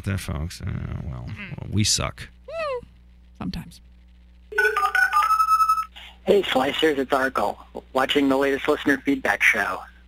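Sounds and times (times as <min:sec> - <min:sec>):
electronic ringtone jingle: 0:04.5 - 0:05.9.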